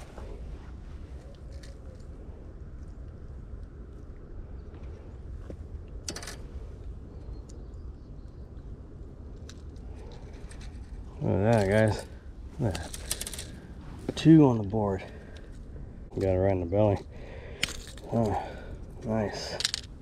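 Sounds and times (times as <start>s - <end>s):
outdoor background noise: 0.0s - 20.0s.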